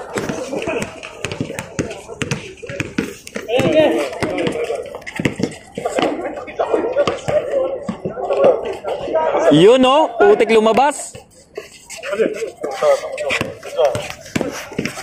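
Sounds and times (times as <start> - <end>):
basketball bouncing on a court: 0.0 - 6.2, 13.3 - 15.0
people talking and calling out: 0.0 - 15.0.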